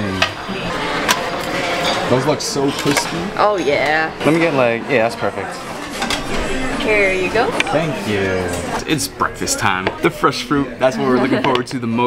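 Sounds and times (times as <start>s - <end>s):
buffet hall din: 0.0s - 12.0s
metal tongs clinking on pans: 2.6s - 3.2s.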